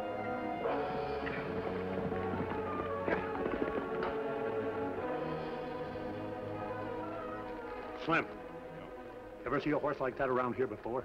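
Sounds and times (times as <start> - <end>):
galloping horses hoofbeats: 0.0 - 8.4
dramatic orchestral music: 0.0 - 10.6.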